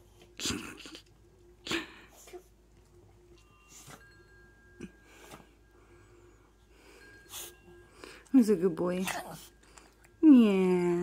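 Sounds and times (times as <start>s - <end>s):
dog snorting and sniffing: 8.9s - 9.9s.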